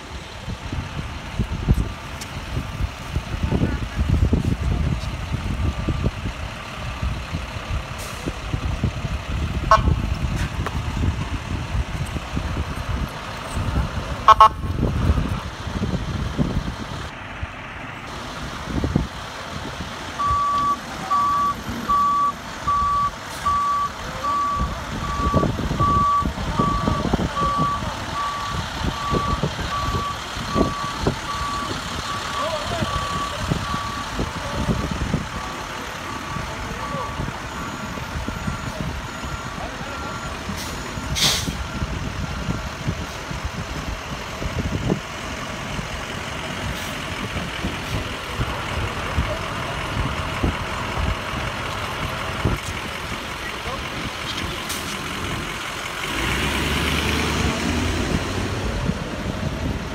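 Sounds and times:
low rumble of vehicles: 0:00.0 - 0:59.9
truck reversing alarm beeping: 0:05.2 - 0:15.4, 0:18.7 - 0:59.9
higher-pitched beeping: 0:20.2 - 0:42.9.

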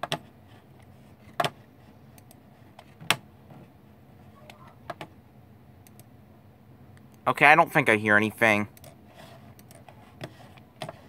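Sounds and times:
faint low hum: 0:00.0 - 0:11.0
computer mouse clicks: 0:02.1 - 0:02.4, 0:05.8 - 0:06.1, 0:08.7 - 0:11.0.

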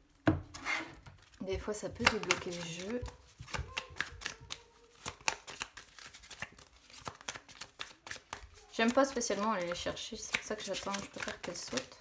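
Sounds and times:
cards being shuffled: 0:02.0 - 0:12.0.

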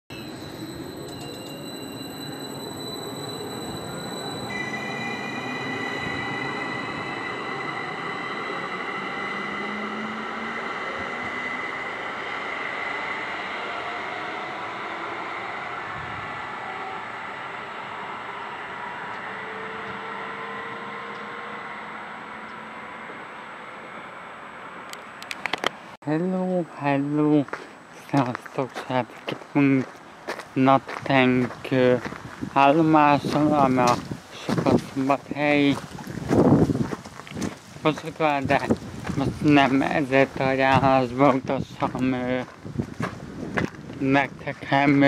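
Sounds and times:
rumble of running train: 0:00.1 - 0:20.0, 0:32.3 - 0:45.0
electric train motors whining: 0:00.1 - 0:24.2.

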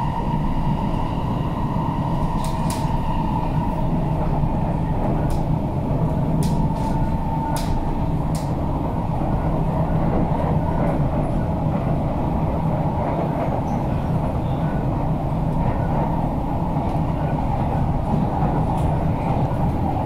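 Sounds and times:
train wheels rumbling on track: 0:00.0 - 0:20.0.

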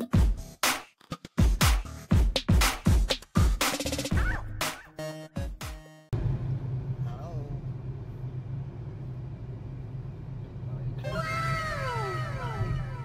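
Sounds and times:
car engine hum inside cabin: 0:06.1 - 0:13.0.

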